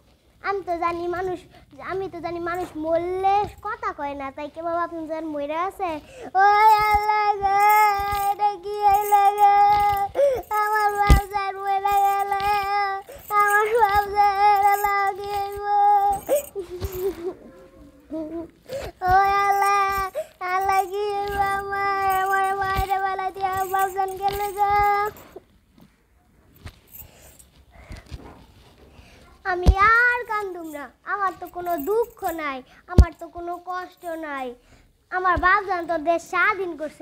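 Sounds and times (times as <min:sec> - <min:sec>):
girl sing-song vocalising: 0:05.8 - 0:25.4
girl wailing: 0:06.7 - 0:25.1.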